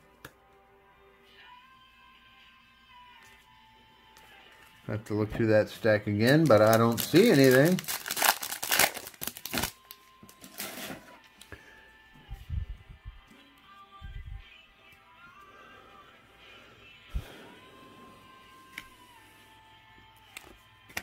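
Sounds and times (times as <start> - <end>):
quiet background music: 0.0 - 21.0
foil wrapper crinkling: 5.8 - 10.9.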